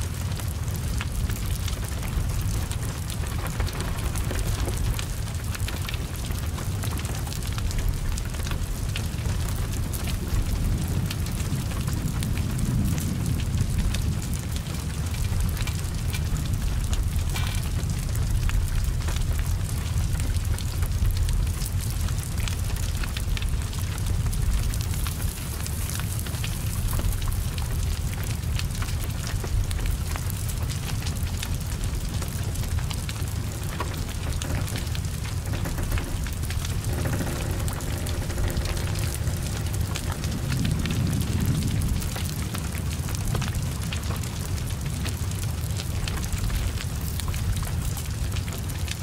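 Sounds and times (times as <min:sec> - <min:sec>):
fire rumbling: 0:00.0 - 0:49.0
heavy rain ticking: 0:00.0 - 0:49.0.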